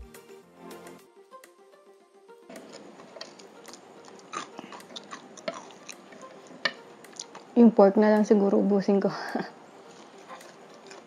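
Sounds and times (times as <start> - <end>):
background music: 0.0 - 11.0
person chewing food: 2.5 - 7.6, 9.8 - 11.0.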